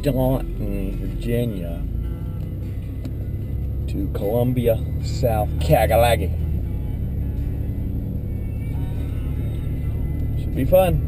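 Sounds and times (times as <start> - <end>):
car interior engine and tyre rumble: 0.0 - 11.0.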